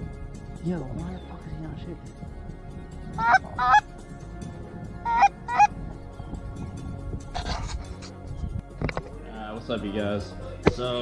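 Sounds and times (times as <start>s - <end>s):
goose honks: 3.2s - 3.8s, 5.1s - 5.7s.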